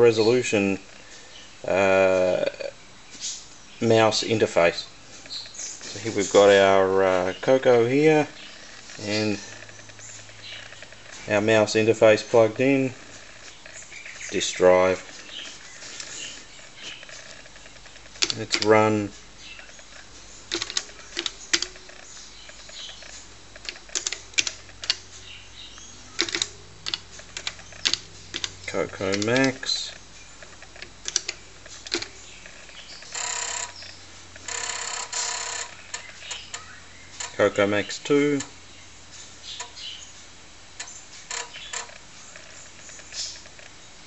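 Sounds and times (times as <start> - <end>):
faint steady hum: 0.0 - 44.0
floppy disk drive clicking: 8.2 - 38.6
keyboard keystrokes clicking: 18.1 - 18.8, 20.5 - 21.9, 23.6 - 25.0, 26.2 - 29.7, 30.7 - 32.1.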